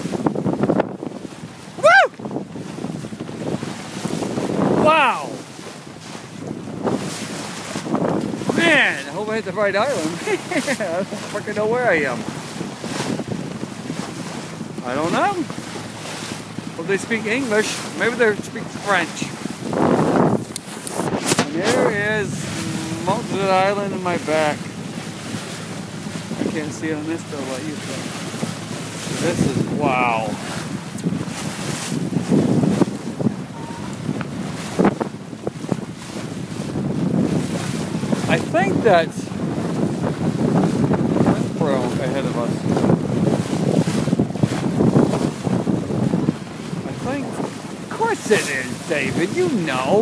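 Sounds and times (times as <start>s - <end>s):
sea water rushing along hull: 0.0s - 50.0s
wind buffeting microphone: 0.0s - 50.0s.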